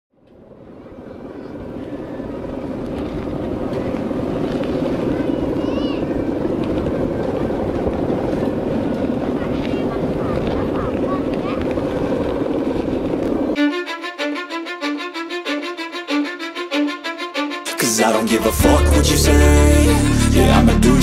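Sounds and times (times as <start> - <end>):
kite hummer buzzing drone: 0.2 - 17.7
wind rumbling on microphone: 0.4 - 13.6.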